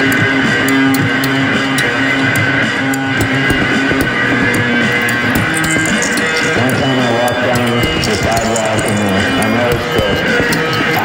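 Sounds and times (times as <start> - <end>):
sharp percussive tick: 0.0 - 11.0
sustained electric guitar: 0.0 - 11.0.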